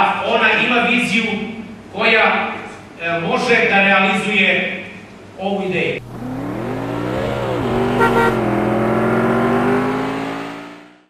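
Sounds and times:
car engine revving: 0:06.0 - 0:11.0.

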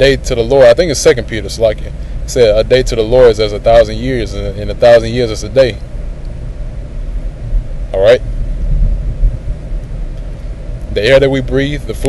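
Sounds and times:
man speaking: 0:00.0 - 0:05.8, 0:07.9 - 0:08.2, 0:10.9 - 0:12.0
steady low rumble: 0:00.0 - 0:12.0.

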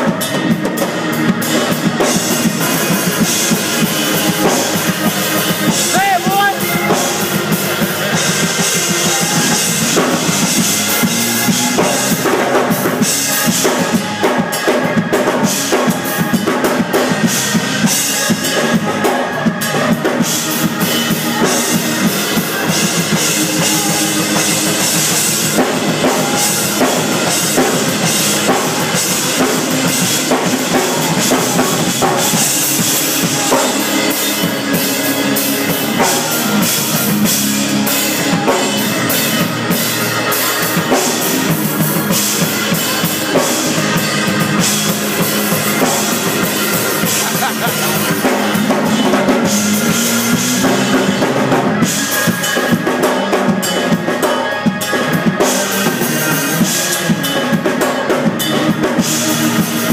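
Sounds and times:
drum kit playing: 0:00.0 - 0:59.9
organ chords: 0:00.0 - 0:59.9.

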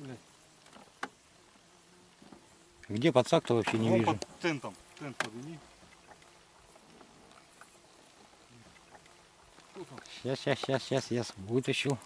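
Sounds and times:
faint background noise: 0:00.0 - 0:12.0
man speaking: 0:02.9 - 0:05.7.

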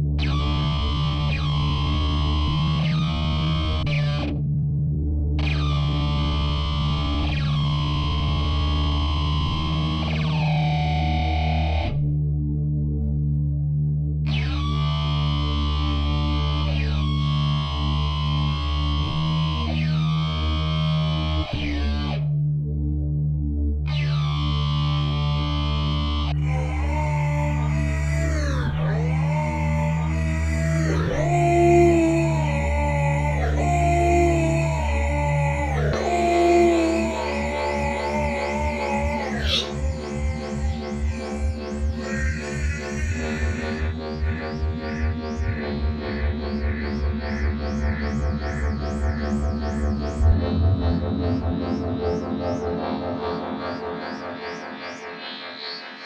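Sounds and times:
deep bass: 0:00.0 - 0:53.7.

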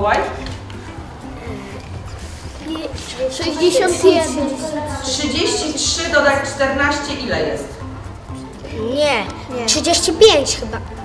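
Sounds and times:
quiet classroom voices: 0:00.0 - 0:09.8
soft background music: 0:00.0 - 0:11.0
child's voice: 0:02.6 - 0:04.8, 0:08.7 - 0:10.8.

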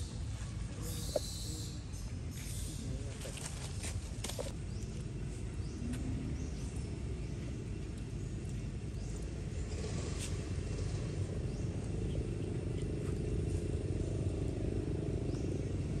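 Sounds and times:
low outdoor rumble: 0:00.0 - 0:16.0.

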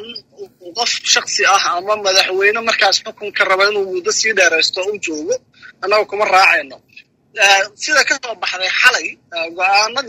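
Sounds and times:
man talking over telephone: 0:00.0 - 0:10.0.

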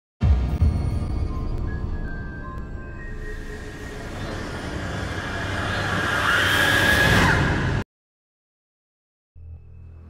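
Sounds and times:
rushing noise: 0:03.1 - 0:07.8.

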